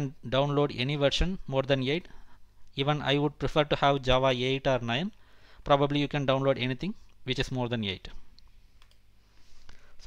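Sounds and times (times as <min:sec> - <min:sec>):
computer mouse clicks: 0:08.4 - 0:09.1.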